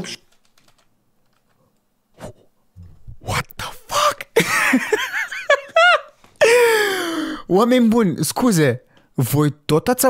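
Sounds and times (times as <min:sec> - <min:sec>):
keyboard clicks: 0:00.0 - 0:01.6.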